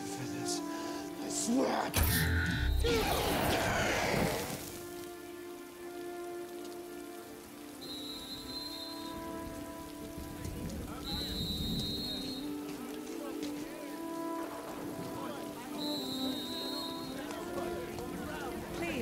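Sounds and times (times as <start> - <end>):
heavy rain falling: 0.0 - 19.0.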